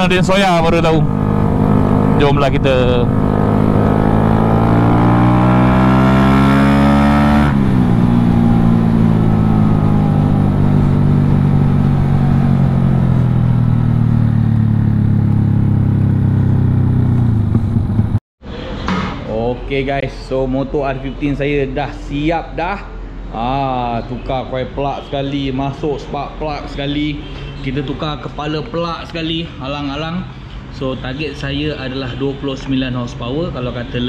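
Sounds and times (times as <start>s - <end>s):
motorcycle engine while riding: 0.0s - 18.2s.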